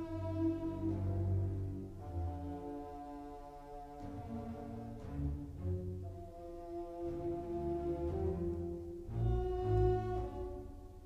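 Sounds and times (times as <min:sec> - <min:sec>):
orchestral low brass chords: 0:00.0 - 0:11.0.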